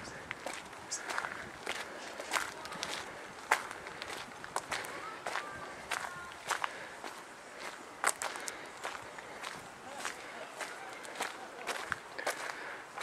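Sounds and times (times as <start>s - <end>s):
footsteps on gravel and dirt: 0.0s - 13.0s.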